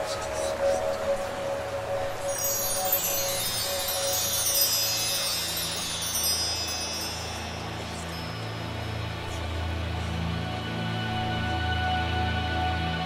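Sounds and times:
low held drone: 0.0s - 13.0s
high chime tones cascade: 2.1s - 9.6s.

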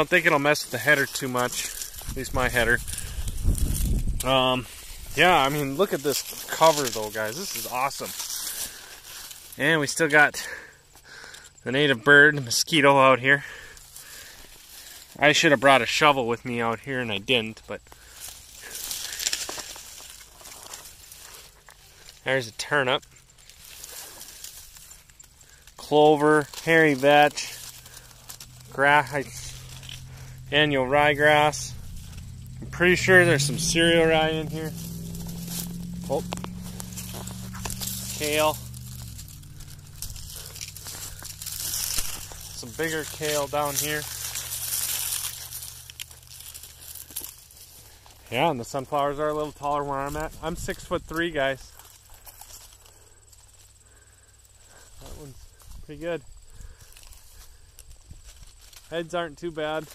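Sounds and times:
leaves rustling and crackling: 0.0s - 10.7s, 12.4s - 59.9s
small snaps of stalks: 17.9s - 22.2s, 34.7s - 48.3s.

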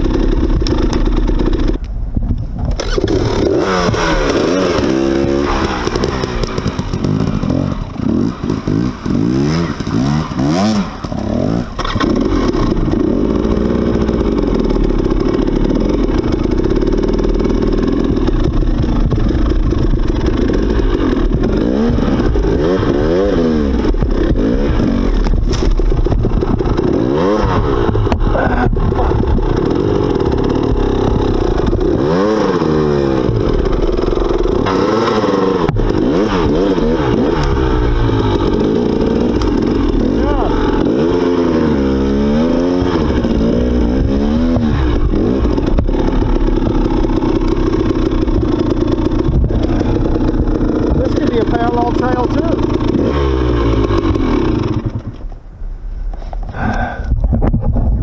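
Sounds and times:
dirt bike engine revving: 0.0s - 1.9s, 2.7s - 55.4s.

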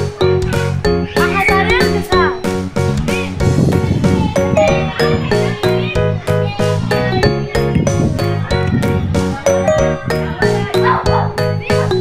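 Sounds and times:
bell-like melody over quick beat: 4.3s - 12.0s.

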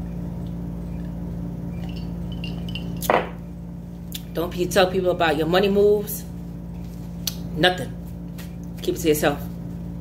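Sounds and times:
low room hum: 0.0s - 10.0s
glass jar clinking: 1.8s - 3.4s.

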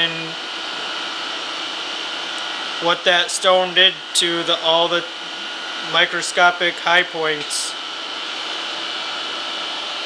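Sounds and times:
high continuous whine: 0.0s - 10.0s
machinery whirring: 2.3s - 5.1s.

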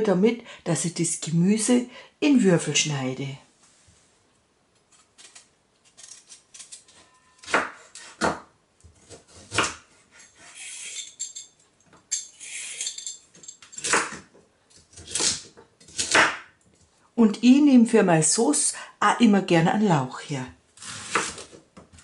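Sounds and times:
knife scraping while peeling: 4.9s - 8.2s, 9.0s - 11.2s, 12.3s - 13.0s, 20.8s - 21.6s.

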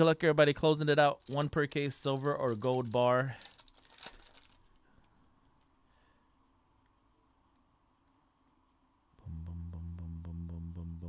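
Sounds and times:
foil wrapper crinkling: 1.1s - 5.7s.

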